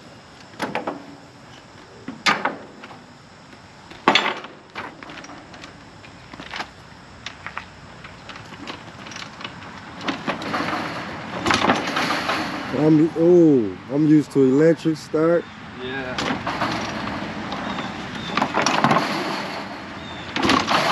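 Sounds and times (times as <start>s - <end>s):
knocks and clunks: 8.2s - 12.9s, 16.2s - 20.9s
dirt bike kick-start strokes: 16.2s - 20.9s.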